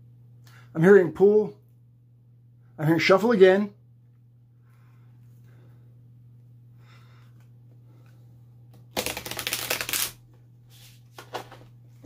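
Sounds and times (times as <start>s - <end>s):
cards being shuffled: 8.7s - 11.7s.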